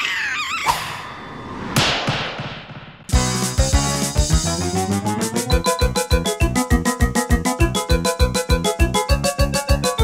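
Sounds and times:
cartoon character wavering cry: 0.0 - 0.9
sudden thud: 1.7 - 3.0.

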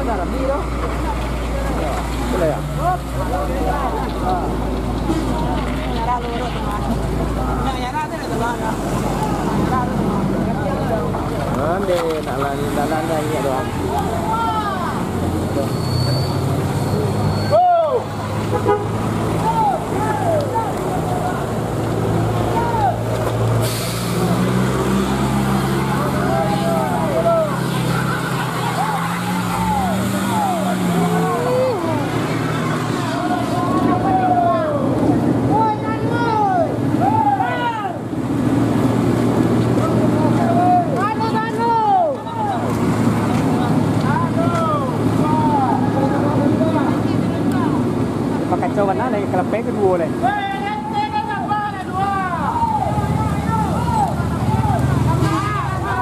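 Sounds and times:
heavy vehicle engines labouring: 0.0 - 56.0
people calling out: 13.8 - 23.2, 25.1 - 38.0, 50.2 - 56.0.

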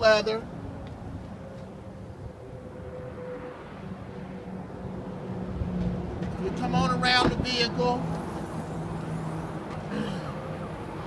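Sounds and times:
road traffic hum: 0.0 - 11.0
vehicle engine droning: 0.0 - 11.0.

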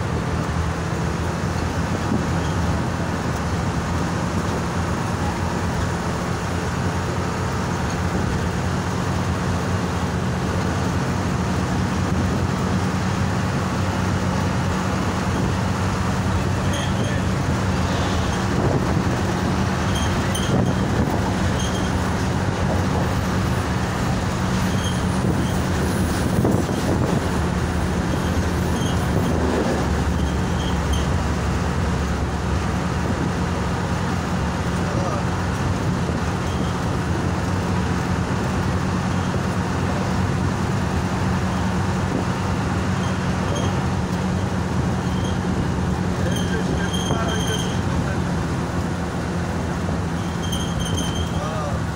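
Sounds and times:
bus engine running: 0.0 - 51.9
faint regular train clicking: 0.0 - 51.9
tyre and road noise: 0.0 - 51.9.

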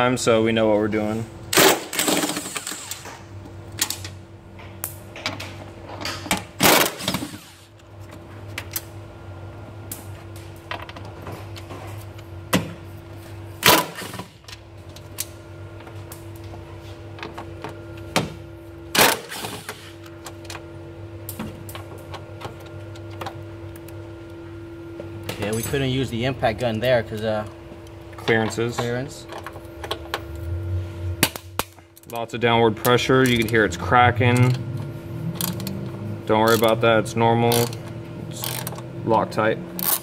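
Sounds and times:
steady low hum: 0.0 - 40.0
clicks of tool and bolts: 36.5 - 36.8, 38.4 - 38.8.

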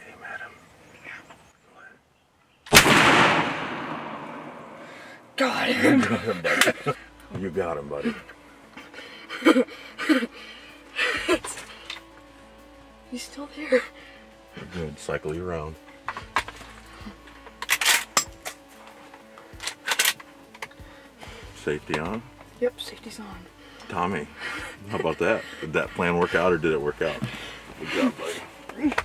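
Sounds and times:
shotgun blast with echo: 2.7 - 5.0
shotgun handling clicks: 17.4 - 20.8.

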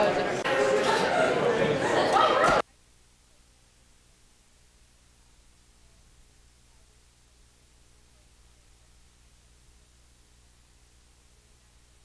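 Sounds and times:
people talking: 0.0 - 2.6.

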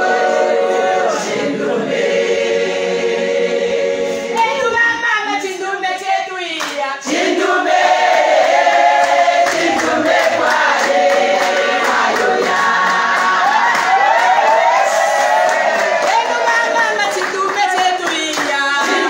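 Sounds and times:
women singing gospel: 0.0 - 19.0
handclaps: 6.6 - 6.8, 9.0 - 14.6, 15.3 - 19.0.

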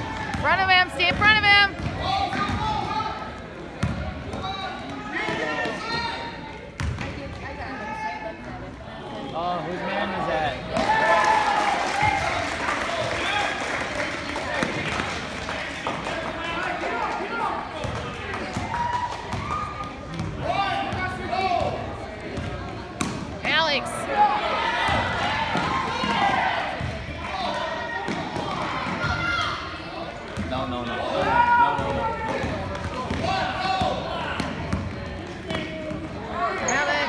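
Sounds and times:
players and spectators calling out: 0.0 - 6.8, 7.5 - 37.0.

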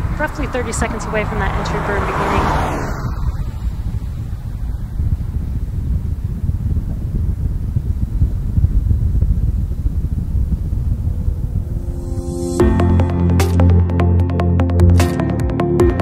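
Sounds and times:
rocket engine low rumble: 0.0 - 13.3.

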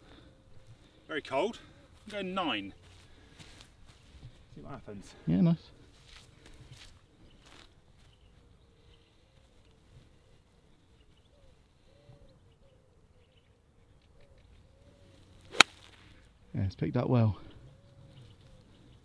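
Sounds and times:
golf club striking ball: 15.5 - 15.8.

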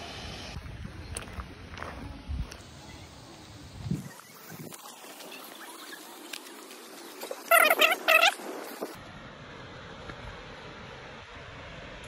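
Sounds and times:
outdoor hiss: 0.0 - 12.0
wavering animal calls: 7.5 - 8.4.

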